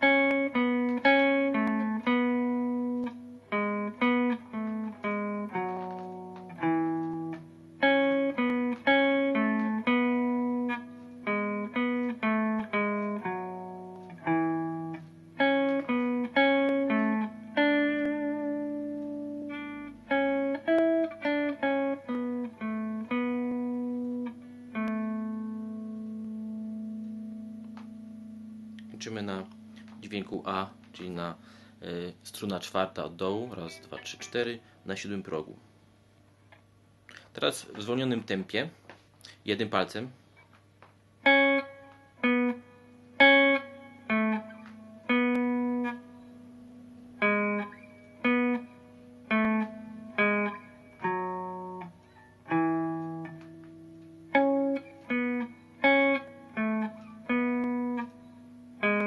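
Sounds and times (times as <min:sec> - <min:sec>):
clean electric guitar melody: 0:00.0 - 0:34.8, 0:40.5 - 0:59.0.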